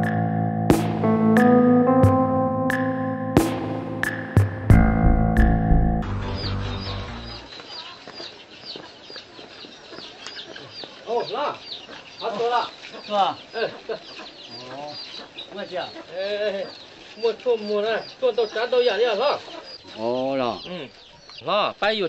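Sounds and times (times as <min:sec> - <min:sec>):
chickens clucking: 0:06.0 - 0:21.7
chicks peeping: 0:06.0 - 0:22.0.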